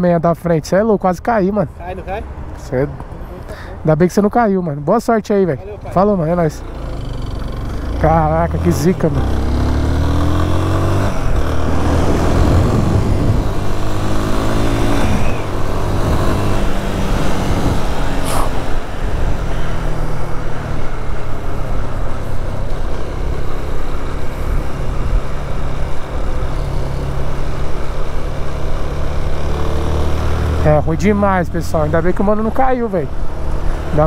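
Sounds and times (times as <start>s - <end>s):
motorcycle engine accelerating: 6.6s - 34.0s
wind noise on microphone: 11.1s - 19.5s.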